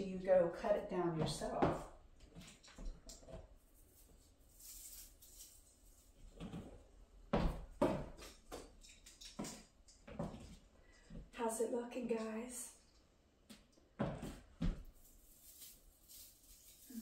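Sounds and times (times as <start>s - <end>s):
soft rustle: 2.4s - 6.8s, 14.1s - 17.0s.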